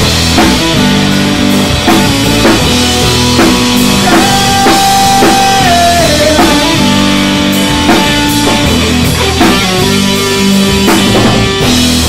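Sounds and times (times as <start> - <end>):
drum kit beat: 0.0 - 12.0
electric guitars: 0.0 - 12.0.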